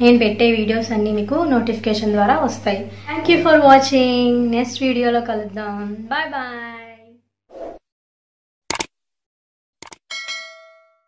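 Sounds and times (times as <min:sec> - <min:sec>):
quick double click: 0:08.7 - 0:08.9, 0:09.8 - 0:10.0
bright bell ding: 0:10.1 - 0:11.0.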